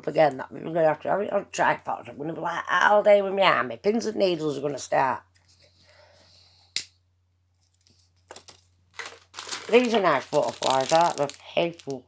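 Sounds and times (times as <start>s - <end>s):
soft hiss of breath: 5.6s - 6.8s.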